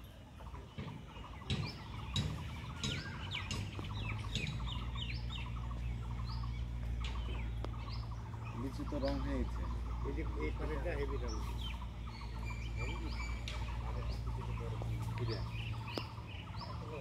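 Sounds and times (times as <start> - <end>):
birds chirping: 0.0 - 17.0
low steady hum: 0.0 - 17.0.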